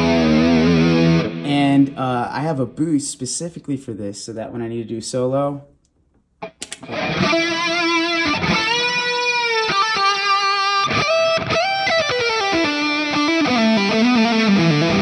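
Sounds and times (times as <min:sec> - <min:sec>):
distorted electric guitar solo: 0:00.0 - 0:02.0, 0:06.4 - 0:15.0.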